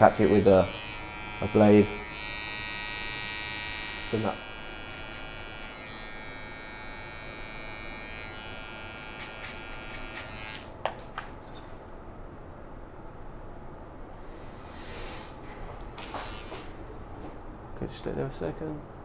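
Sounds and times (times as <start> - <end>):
hair clipper humming: 0.0 - 10.8, 16.0 - 16.7.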